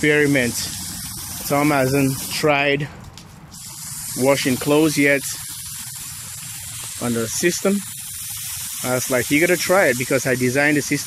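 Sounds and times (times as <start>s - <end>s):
hose spraying water: 0.0s - 2.9s, 3.5s - 11.0s.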